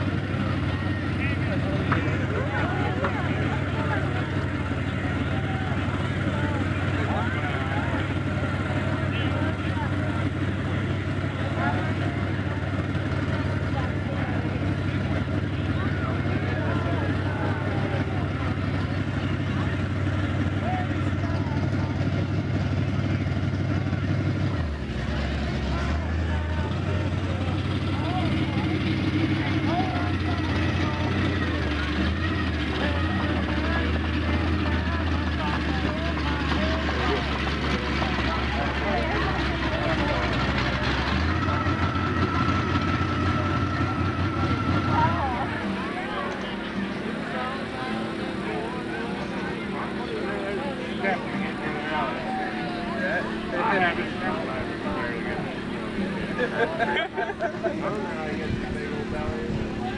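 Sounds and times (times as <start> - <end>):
crowd chatter: 0.0 - 59.9
engine droning: 0.0 - 59.9.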